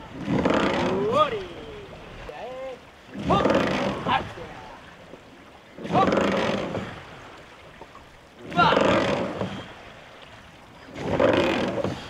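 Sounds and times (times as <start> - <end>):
oars rushing through water: 0.0 - 12.0.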